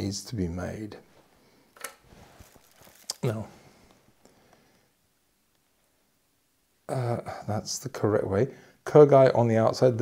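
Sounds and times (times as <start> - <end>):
object set down on tissue paper: 1.8 - 3.1
short sharp rustle: 2.0 - 3.3.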